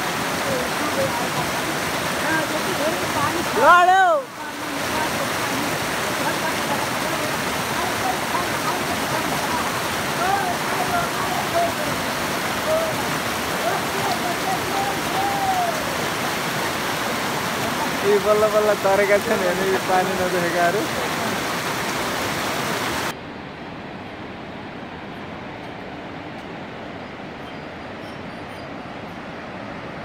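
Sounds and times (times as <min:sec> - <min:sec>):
river rushing over rocks: 0:00.0 - 0:30.0
person shouting: 0:14.6 - 0:16.0.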